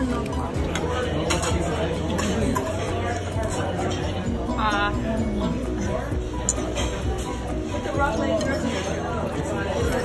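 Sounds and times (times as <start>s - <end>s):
cutlery and dishes clinking: 0.0s - 4.6s, 5.3s - 10.0s
background music: 0.0s - 10.0s
restaurant chatter: 0.0s - 10.0s.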